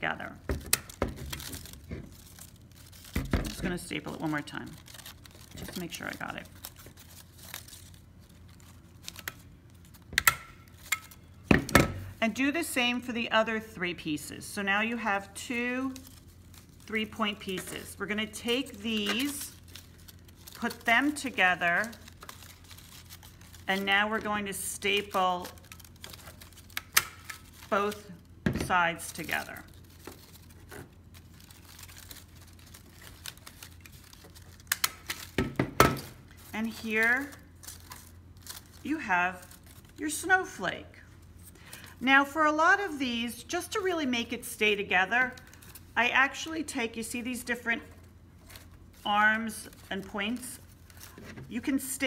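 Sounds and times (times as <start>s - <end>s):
paper rustling: 0.8s - 11.2s, 15.9s - 28.2s, 29.0s - 35.4s, 47.9s - 51.8s.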